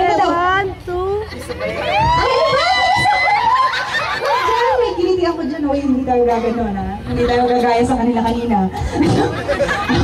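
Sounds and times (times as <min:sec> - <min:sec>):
high-pitched voices laughing: 0:01.0 - 0:05.0, 0:06.5 - 0:07.9, 0:08.8 - 0:10.0.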